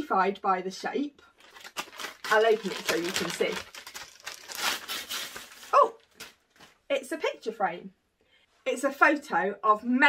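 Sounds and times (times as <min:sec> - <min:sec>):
wrapping paper tearing and crinkling: 0:01.4 - 0:06.4.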